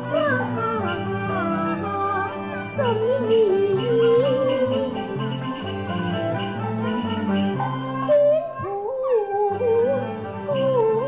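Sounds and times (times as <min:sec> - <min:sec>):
bending held melody line: 0:00.0 - 0:11.0
traditional opera ensemble music: 0:00.0 - 0:11.0.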